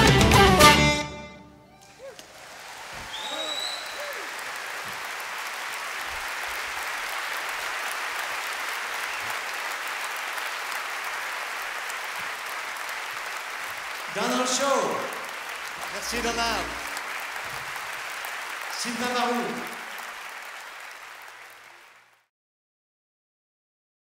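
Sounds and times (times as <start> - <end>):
shouted cheers: 1.6 - 10.7
audience applauding: 1.7 - 22.3
person whistling: 3.1 - 4.2.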